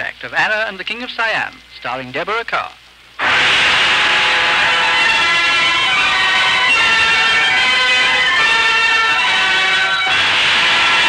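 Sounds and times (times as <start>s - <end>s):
orchestra holding a loud chord: 3.2s - 11.0s.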